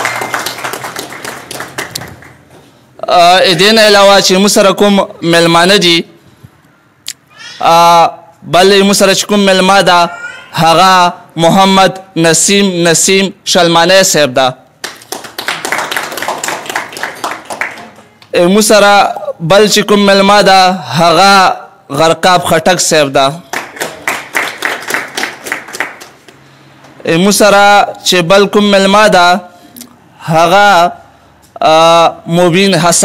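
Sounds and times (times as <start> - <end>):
audience applauding: 0.0 - 2.5, 14.8 - 18.3, 23.5 - 26.4.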